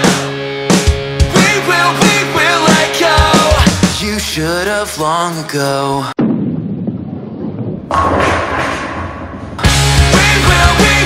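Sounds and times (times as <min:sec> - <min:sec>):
pop-punk band with guitars and drums: 0:00.0 - 0:04.1, 0:09.6 - 0:11.0.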